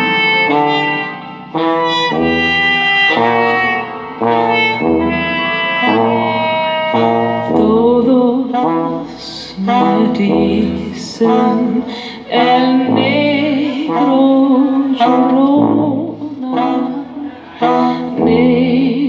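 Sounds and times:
brass and wind ensemble playing: 0.0s - 19.0s
low bass note: 0.0s - 19.0s.

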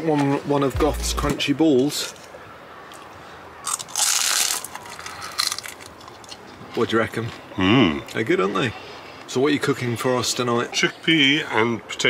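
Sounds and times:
crunchy snack being bitten: 3.6s - 6.4s.

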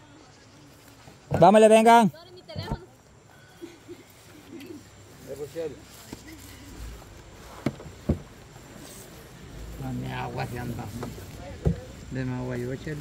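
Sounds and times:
faint voices talking: 0.0s - 7.6s, 8.3s - 13.0s.

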